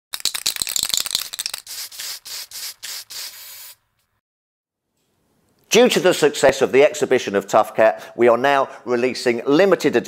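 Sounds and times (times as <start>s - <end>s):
spray can ball rattling: 0.1s - 4.0s
spray can hissing: 0.2s - 4.1s.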